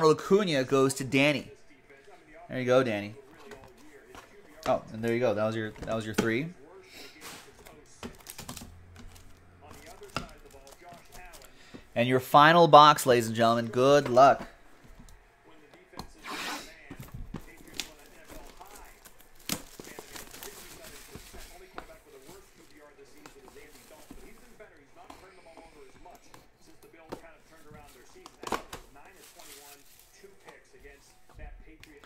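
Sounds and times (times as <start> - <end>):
shrink wrap crinkling: 17.4 - 24.8, 27.6 - 31.0.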